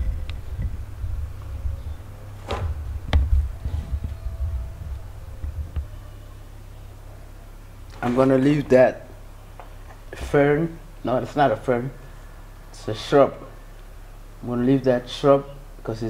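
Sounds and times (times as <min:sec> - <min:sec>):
microphone handling rumble: 0:00.0 - 0:11.4.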